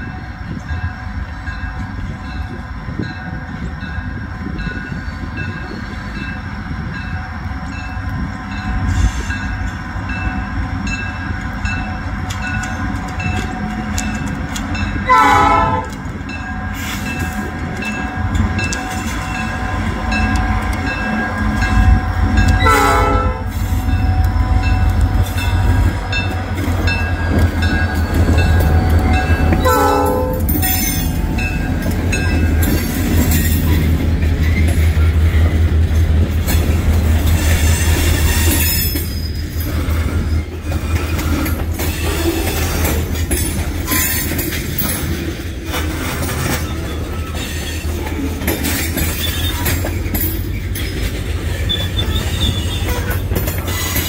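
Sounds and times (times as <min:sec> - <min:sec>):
diesel locomotive engine rumble: 0:00.0 - 0:54.0
train horn blasts: 0:15.0 - 0:17.0, 0:18.2 - 0:26.5, 0:27.2 - 0:31.3.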